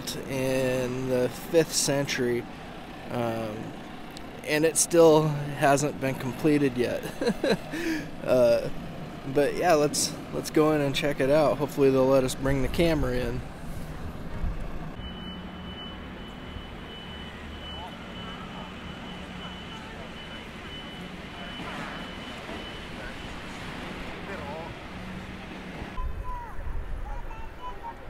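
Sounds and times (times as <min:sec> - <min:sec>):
distant traffic: 0:00.0 - 0:28.0
passers-by voices: 0:16.8 - 0:28.0.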